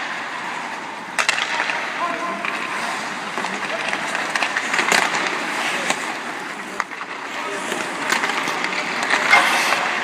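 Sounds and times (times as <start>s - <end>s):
skates scraping on ice: 0.0s - 10.0s
stick clacking puck: 0.0s - 10.0s.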